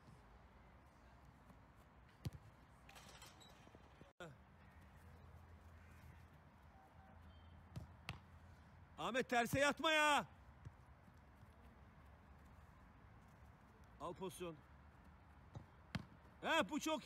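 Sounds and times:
football thumps: 15.5 - 16.2.

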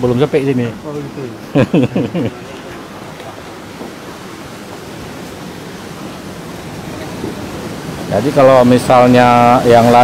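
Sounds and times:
seaside wind: 0.0 - 10.0
surf rushing: 0.0 - 10.0.

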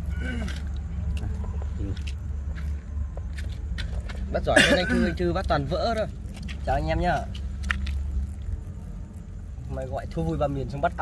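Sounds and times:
low rumble with hum: 0.0 - 11.0.

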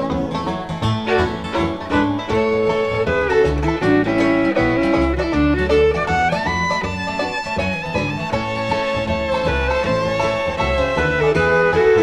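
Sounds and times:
bluegrass band playing: 0.0 - 12.0
fiddle melody: 0.0 - 12.0.

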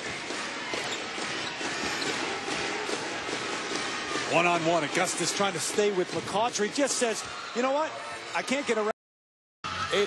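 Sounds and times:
arena crowd din: 0.0 - 9.0, 9.6 - 10.0.

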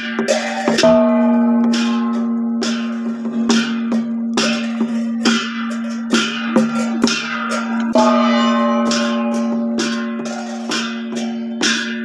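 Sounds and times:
cymbals struck: 0.0 - 12.0
steady held tone: 0.0 - 12.0
gong struck: 0.1 - 12.0.

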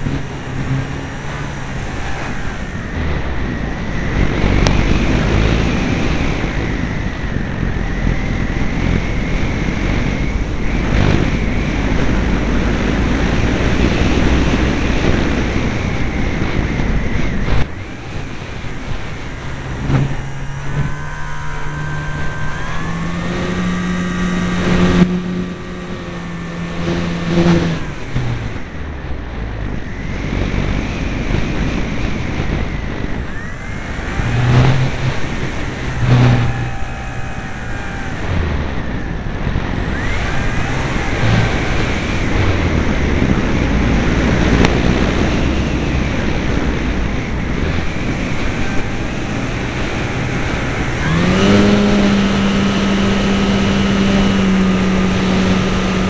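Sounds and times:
electric motor and propeller drone: 0.0 - 56.0
wind rushing over microphone: 0.0 - 56.0.

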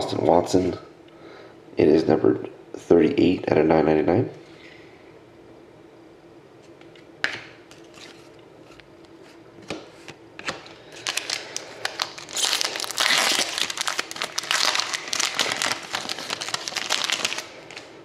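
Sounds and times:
foil wrapper crinkling and tearing: 10.8 - 17.9.

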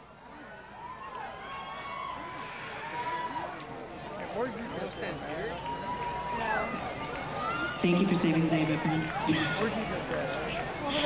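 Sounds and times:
crowd chattering and shouting: 0.0 - 11.0.

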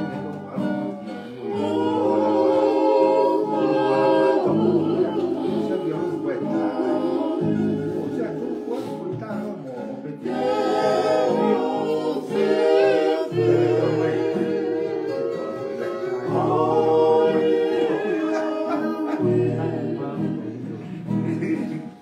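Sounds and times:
men singing in harmony: 0.0 - 21.2
strummed acoustic guitars: 0.0 - 22.0.

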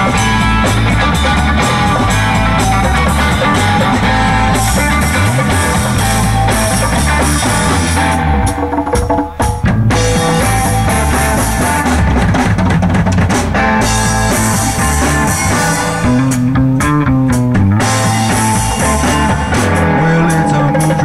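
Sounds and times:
electric bass: 0.0 - 8.8, 9.4 - 21.0
drum kit: 0.0 - 21.0
electric guitars: 0.0 - 21.0
keyboard: 0.0 - 21.0.

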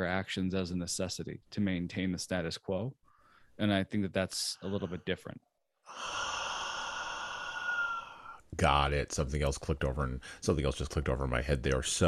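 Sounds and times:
man sighing: 5.9 - 8.4.

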